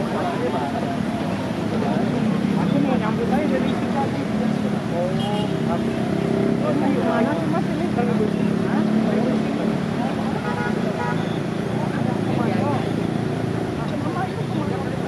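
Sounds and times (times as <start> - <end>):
crowd talking: 0.0 - 15.0.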